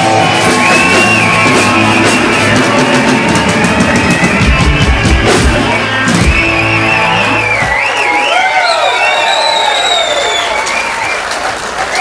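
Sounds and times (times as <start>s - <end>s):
rock-country band playing: 0.0s - 8.3s.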